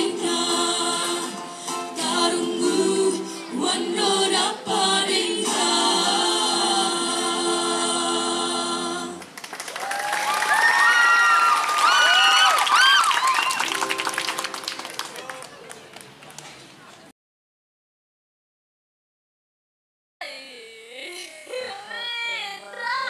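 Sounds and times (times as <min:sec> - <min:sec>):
vocal group singing in harmony: 0:00.0 - 0:09.4
applause: 0:09.2 - 0:16.7
whoops and cheers: 0:09.7 - 0:13.7.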